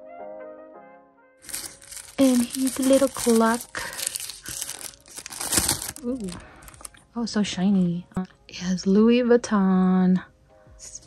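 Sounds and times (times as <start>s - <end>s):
tissue paper crinkling: 1.4s - 6.9s.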